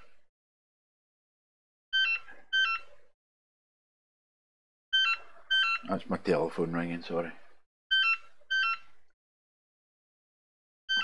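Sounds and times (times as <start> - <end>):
telephone ringing: 4.9 - 5.8.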